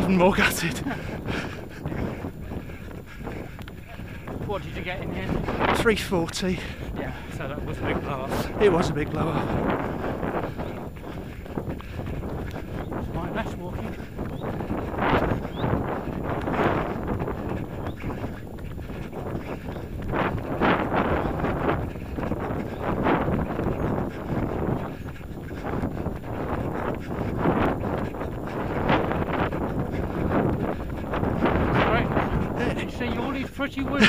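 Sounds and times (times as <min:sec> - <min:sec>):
footsteps on tarmac: 0:00.0 - 0:34.0
wind buffeting microphone: 0:00.0 - 0:34.0.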